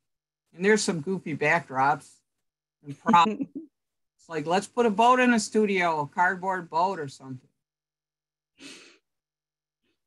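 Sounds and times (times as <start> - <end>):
sigh-like exhale: 8.6 - 9.0.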